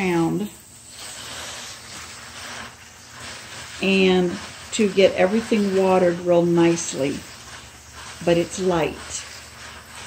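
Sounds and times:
water spraying from hose nozzle: 0.0 - 10.0.

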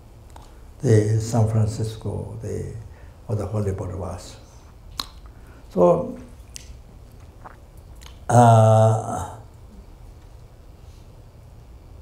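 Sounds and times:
mouth clicks: 0.3 - 0.6, 4.9 - 5.4, 6.5 - 8.4.

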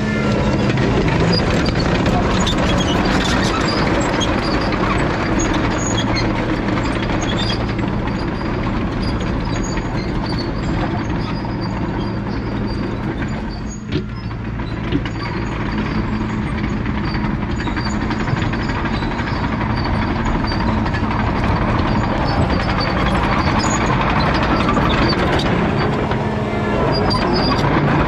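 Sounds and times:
diesel engine under load: 0.0 - 28.0
steel tracks clanking: 0.0 - 28.0
high undercarriage squeaks: 0.2 - 28.0.

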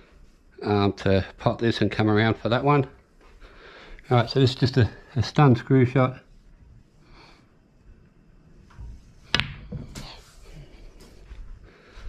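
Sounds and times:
cue ball hitting object ball: 9.2 - 10.1
cue tip striking ball: 9.3 - 10.0.

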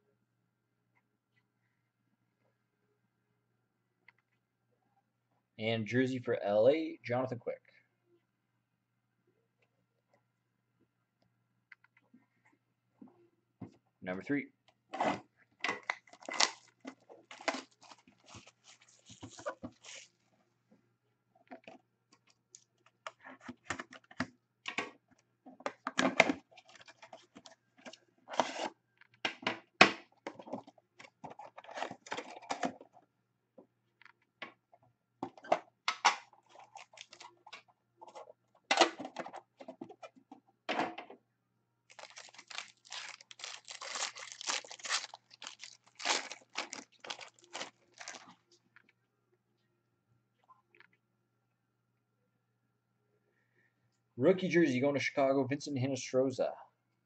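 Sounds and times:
wrapper tearing and crinkling: 15.8 - 20.2, 36.4 - 37.4, 41.9 - 48.4.

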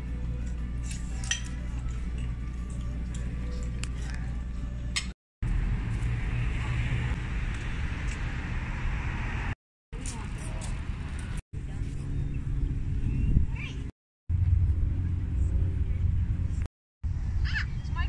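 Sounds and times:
traffic rumble: 0.0 - 18.0.

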